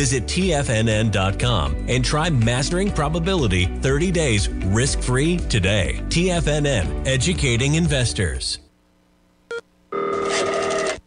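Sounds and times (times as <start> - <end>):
telephone ringing: 9.9 - 11.0.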